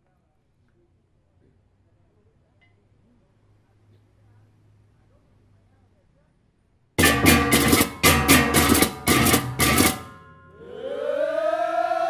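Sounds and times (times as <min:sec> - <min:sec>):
group of voices shouting: 0:10.5 - 0:12.0.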